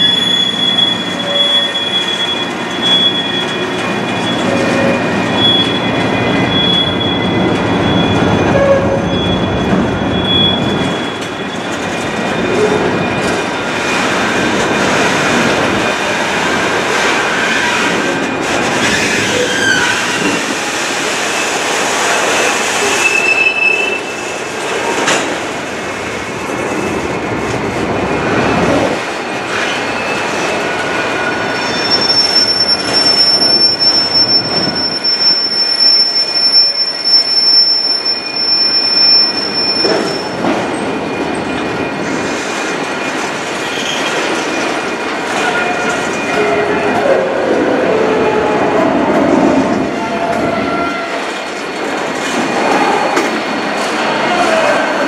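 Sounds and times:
steel wheel squeal: 0:00.0 - 0:14.2, 0:18.8 - 0:20.4, 0:22.8 - 0:24.3, 0:31.3 - 0:44.8
freight train rumbling past: 0:00.0 - 0:37.1, 0:37.9 - 0:55.0.

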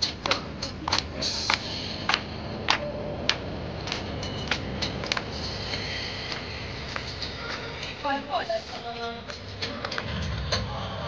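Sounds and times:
hand claps: 0:00.0 - 0:05.4, 0:09.3 - 0:10.0.

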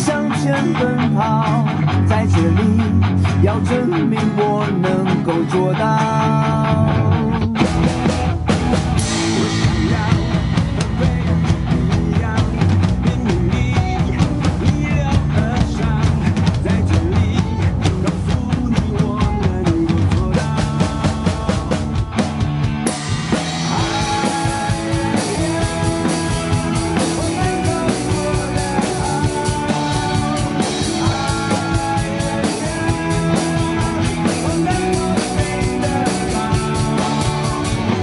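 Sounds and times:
pop-rock backing track: 0:00.0 - 0:38.0
acoustic drum kit playing: 0:07.4 - 0:38.0.

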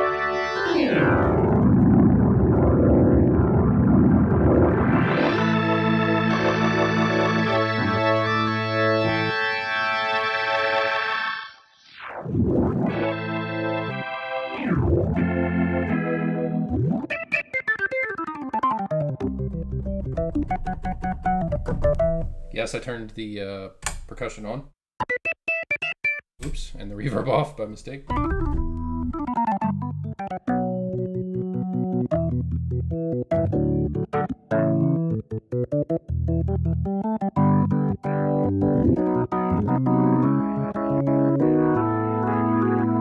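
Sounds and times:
organ chords with glissandos: 0:00.0 - 0:11.4, 0:12.4 - 0:17.4, 0:36.2 - 0:43.0.

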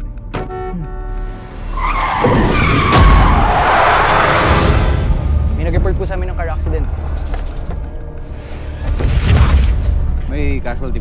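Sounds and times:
trailer music: 0:00.0 - 0:11.0
tyres screeching: 0:01.4 - 0:05.1.

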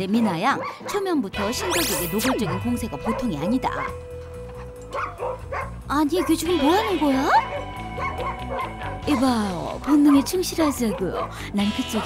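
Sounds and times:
background music: 0:00.0 - 0:12.0
dog yipping: 0:01.6 - 0:04.0, 0:04.6 - 0:06.5, 0:07.3 - 0:09.1.

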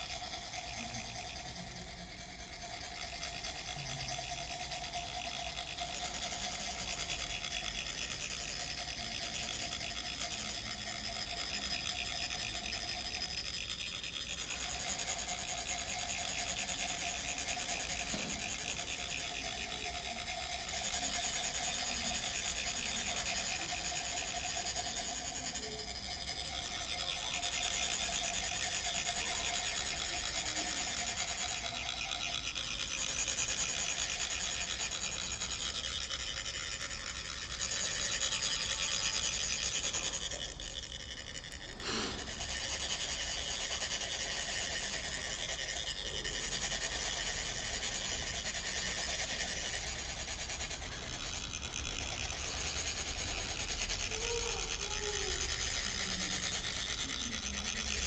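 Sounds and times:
metal rods rasping metal funnels: 0:00.0 - 0:58.0.

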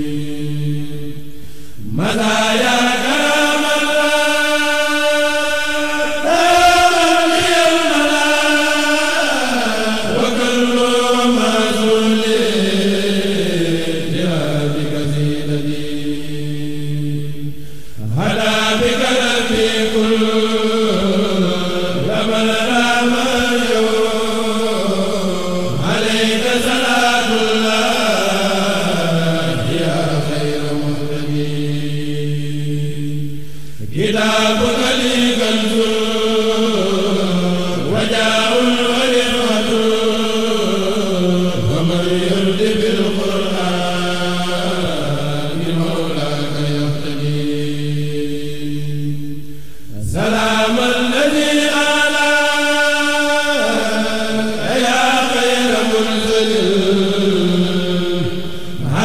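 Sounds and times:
man chanting religious verse: 0:00.0 - 0:49.3, 0:49.9 - 0:59.0.

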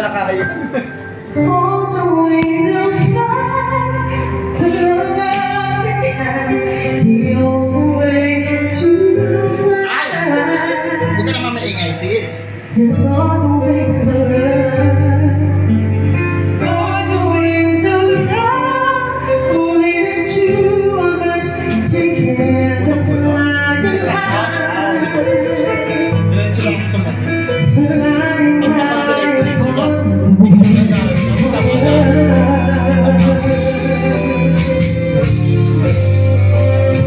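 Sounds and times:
instrumental backing track: 0:00.0 - 0:37.0
woman singing karaoke: 0:01.2 - 0:11.4, 0:12.6 - 0:26.3, 0:27.2 - 0:37.0.

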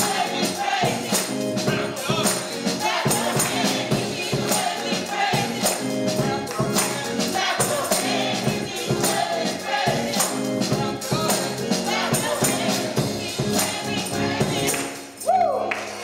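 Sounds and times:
drum kit: 0:00.0 - 0:15.2
electric organ chords: 0:00.0 - 0:15.2
voices singing: 0:00.0 - 0:15.3
tambourine shaken: 0:00.0 - 0:15.6.

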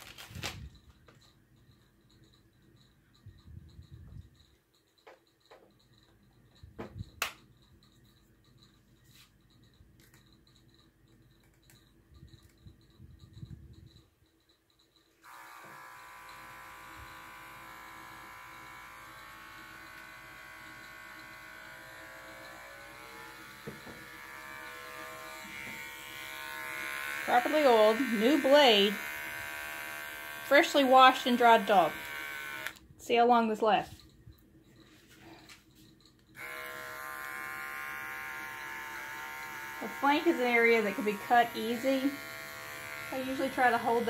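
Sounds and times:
electric clipper buzzing: 0:15.2 - 0:32.8, 0:36.4 - 0:44.0.

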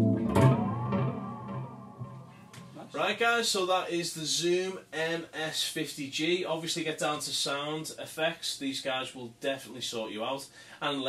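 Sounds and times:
distorted electric guitar chord: 0:00.0 - 0:03.0.

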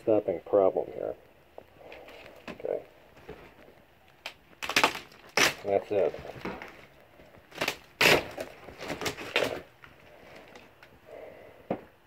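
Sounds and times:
sharp wood crack: 0:01.9 - 0:10.9.

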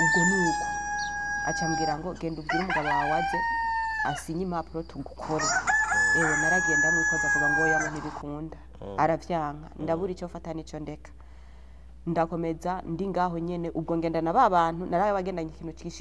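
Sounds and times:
woman talking: 0:00.0 - 0:00.8, 0:01.4 - 0:11.2, 0:12.0 - 0:16.0.

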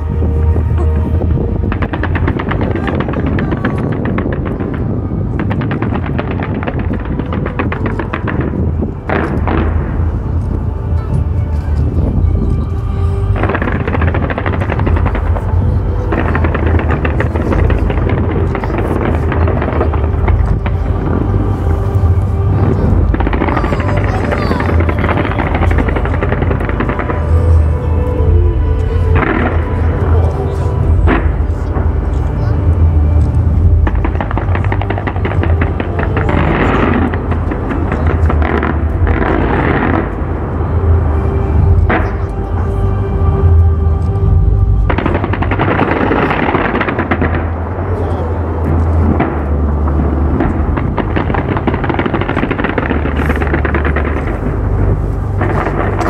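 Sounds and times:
fireworks bursts rumbling: 0:00.0 - 0:56.0
fireworks crackling: 0:00.0 - 0:56.0.

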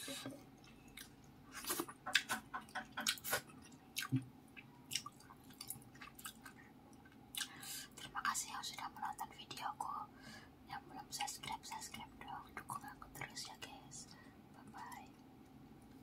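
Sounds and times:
wet chewing mouth sounds: 0:00.5 - 0:07.6.

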